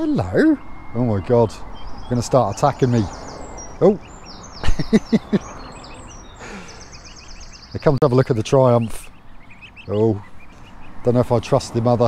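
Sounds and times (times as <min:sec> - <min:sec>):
goslings peeping: 0:00.0 - 0:12.0.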